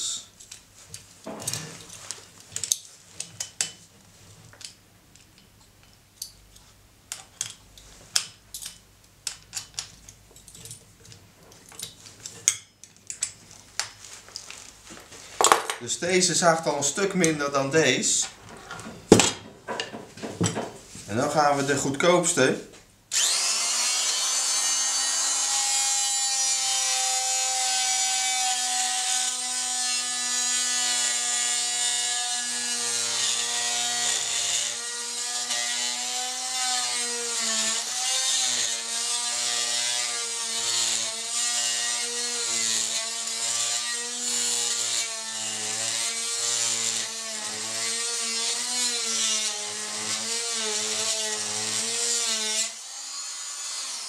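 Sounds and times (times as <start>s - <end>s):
oscillating multi-tool cutting wood: 23.1s - 54.0s.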